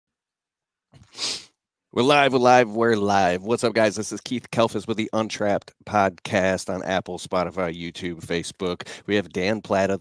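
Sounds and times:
person breath burst: 1.0s - 1.6s, 8.8s - 9.1s.

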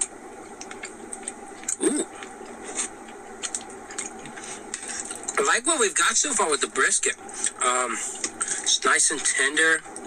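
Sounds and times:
man chewing food: 0.0s - 5.4s
steady background hum: 0.0s - 10.0s.

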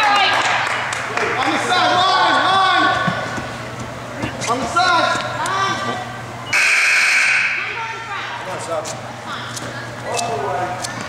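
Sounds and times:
scoreboard horn buzzing: 6.4s - 7.8s.

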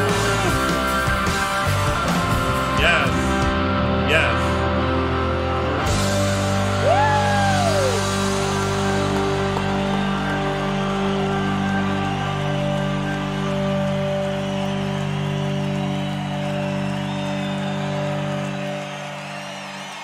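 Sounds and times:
blues-rock band sustained chord: 0.0s - 20.0s
crowd noise: 4.0s - 20.0s.

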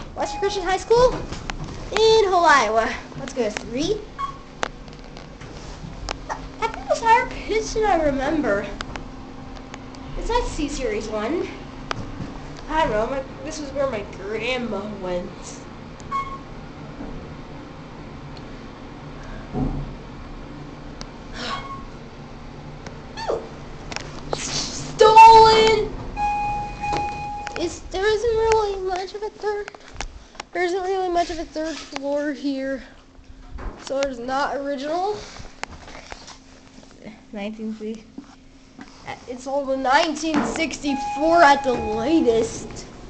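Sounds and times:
elevator motor hum: 25.0s - 28.7s, 40.6s - 43.0s
elevator click: 26.2s - 27.7s
faint low hum: 39.3s - 43.0s
high squeaks: 40.8s - 42.5s.

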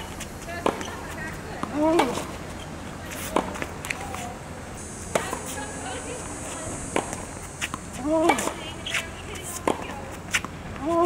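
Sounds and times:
tennis ball struck by racquet: 0.0s - 2.4s, 3.1s - 4.3s, 5.1s - 5.7s, 6.9s - 11.0s
ball bounces or footsteps: 0.0s - 4.4s, 6.9s - 11.0s.

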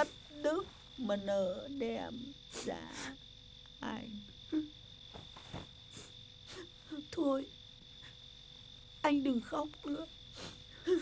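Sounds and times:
crickets chirring: 0.0s - 11.0s
person sniffing while crying: 10.3s - 11.0s.

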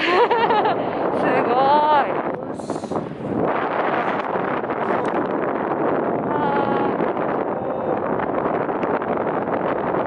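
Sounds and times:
rushing air hiss: 2.4s - 3.3s.

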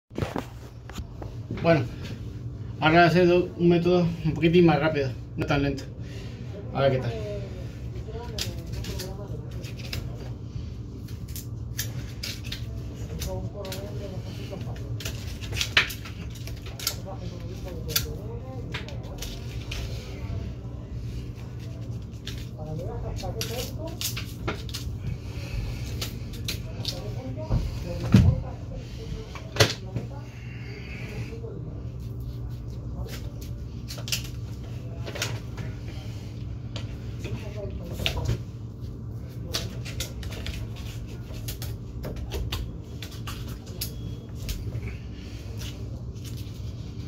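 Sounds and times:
steady low hum: 0.1s - 47.0s.

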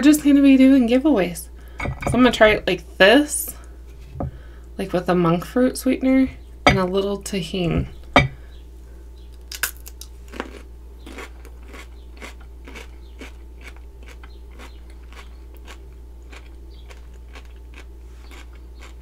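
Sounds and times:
crunchy chewing: 9.3s - 19.0s.

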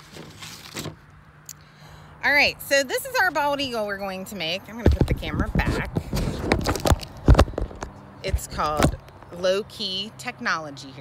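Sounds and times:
paper rustling and scraping: 0.0s - 1.0s, 4.9s - 9.0s.

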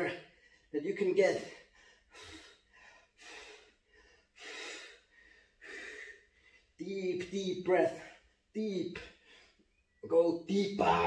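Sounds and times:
man breathing heavily: 0.2s - 0.8s, 1.4s - 6.8s.

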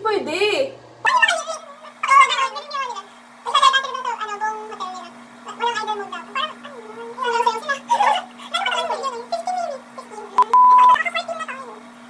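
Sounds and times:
steady low hum: 0.0s - 12.0s
woman's wordless high vocals: 1.1s - 11.8s.

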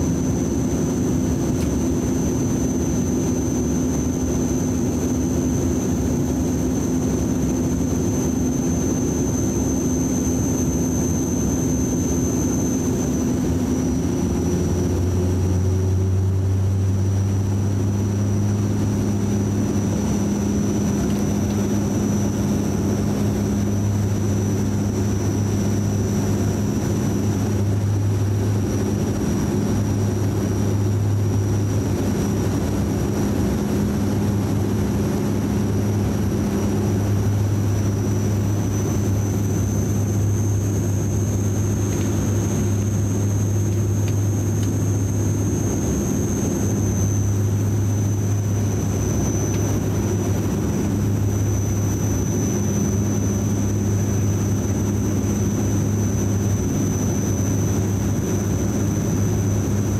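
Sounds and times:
high engine whine: 0.0s - 59.9s
propeller hum: 0.0s - 59.9s.

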